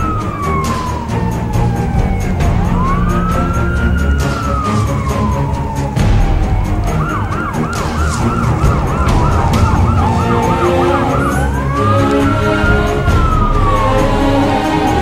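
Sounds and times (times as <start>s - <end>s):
low vehicle rumble: 0.0s - 15.0s
police siren yelp and wail: 0.0s - 15.0s.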